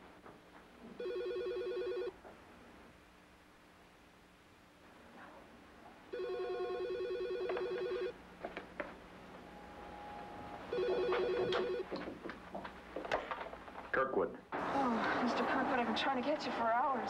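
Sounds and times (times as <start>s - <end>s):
telephone ringing: 1.0s - 2.2s, 6.1s - 8.2s, 10.6s - 11.9s.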